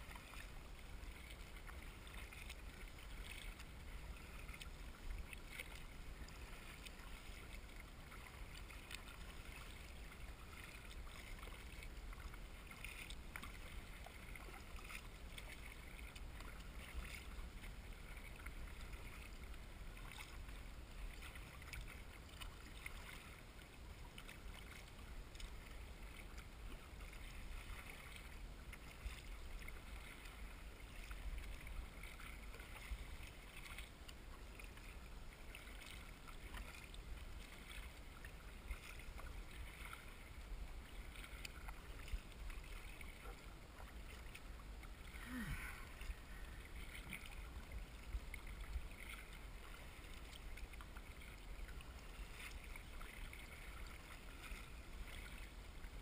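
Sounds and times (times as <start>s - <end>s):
paddle blades dipping: 0.0s - 56.0s
water lapping against kayak: 0.0s - 56.0s.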